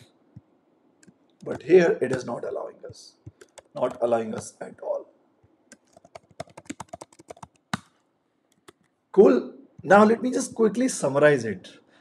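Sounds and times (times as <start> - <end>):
computer keyboard typing: 1.0 - 8.9.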